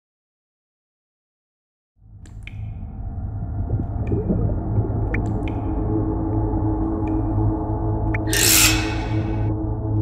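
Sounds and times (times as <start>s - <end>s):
low droning ambient music: 2.0s - 10.0s.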